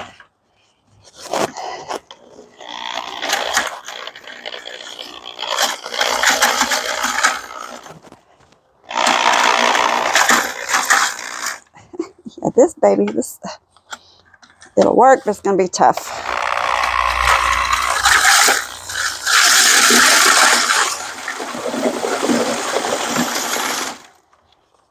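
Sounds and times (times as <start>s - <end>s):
drill mixing concrete in bucket: 1.4s - 8.1s, 8.9s - 11.7s, 16.0s - 24.2s.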